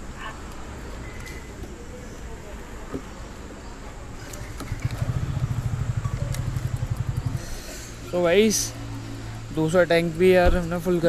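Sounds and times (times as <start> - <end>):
engine idling: 4.4 - 11.0.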